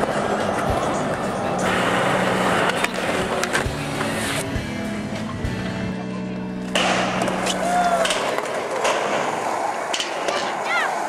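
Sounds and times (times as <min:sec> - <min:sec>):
skateboard clacks: 0:00.0 - 0:04.2, 0:06.7 - 0:11.0
skateboard wheels rolling on concrete: 0:00.0 - 0:11.0.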